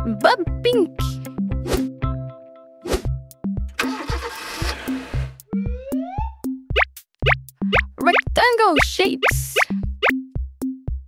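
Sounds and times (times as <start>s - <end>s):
cartoon car engine effect: 3.8s - 6.4s
children's music with beat: 5.4s - 11.0s.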